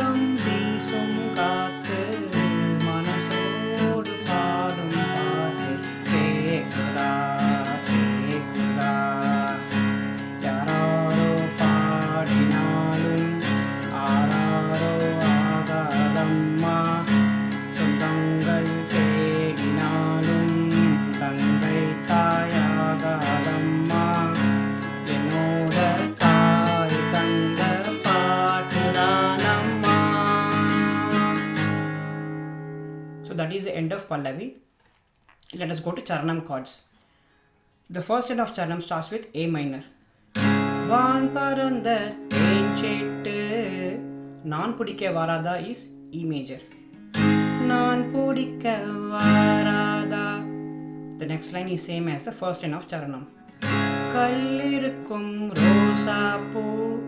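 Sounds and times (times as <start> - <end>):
man singing: 0.0 - 32.0, 40.8 - 46.5, 47.5 - 50.6, 53.8 - 57.0
acoustic guitar strumming: 0.0 - 33.6, 40.1 - 57.0.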